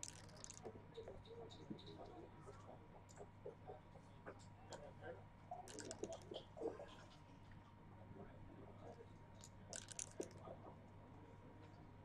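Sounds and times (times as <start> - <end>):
dice rattling: 0.0 - 0.6, 9.7 - 10.4
game checkers clicking: 0.0 - 0.6, 9.8 - 10.4.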